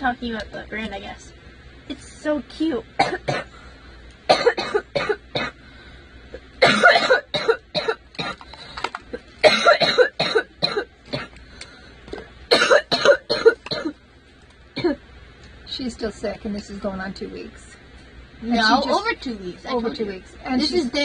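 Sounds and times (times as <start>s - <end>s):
woman coughing harshly: 3.0s - 3.5s, 4.3s - 5.6s, 6.6s - 8.4s, 9.4s - 11.3s, 12.5s - 14.0s, 14.8s - 15.0s.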